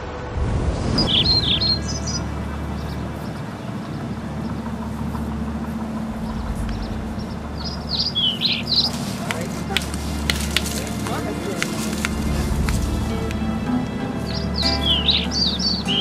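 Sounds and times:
low outdoor rumble: 0.0 - 16.0
birds chirping: 0.8 - 16.0.

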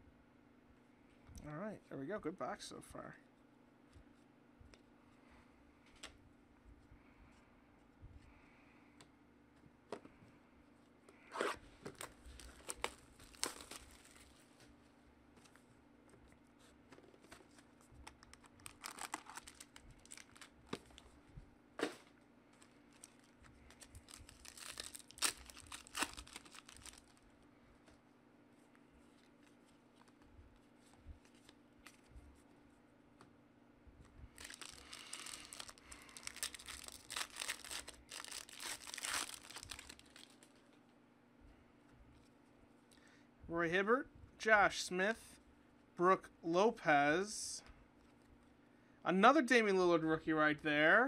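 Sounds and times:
packaging being torn and crinkled: 11.9 - 14.4, 18.0 - 21.1, 22.6 - 27.2, 34.4 - 40.6.

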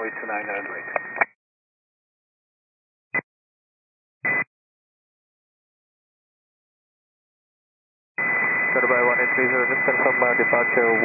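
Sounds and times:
radio transmission voice: 0.0 - 1.3, 8.7 - 11.0
radio click: 0.0 - 1.4.

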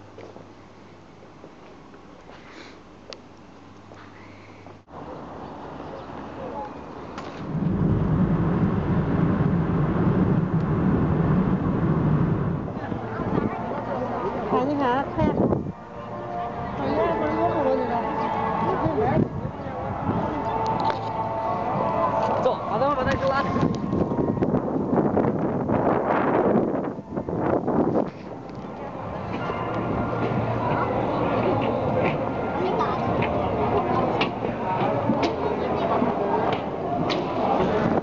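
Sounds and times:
road noise: 3.7 - 38.0
car engine drone: 7.4 - 14.7
wind buffeting microphone: 7.4 - 38.0.

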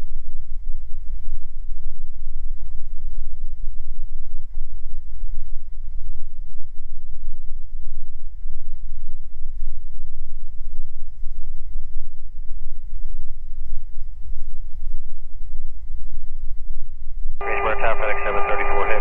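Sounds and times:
radio call over headset: 17.4 - 19.0
twin propeller engines droning: 17.4 - 19.0.

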